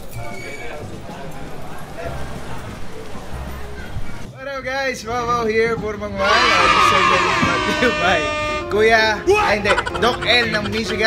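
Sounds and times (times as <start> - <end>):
indistinct voices: 0.0 - 4.3, 5.7 - 11.0.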